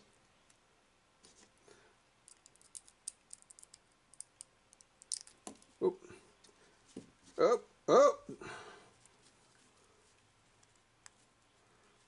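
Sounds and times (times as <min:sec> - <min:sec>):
small plastic parts clicking: 0:02.3 - 0:05.7.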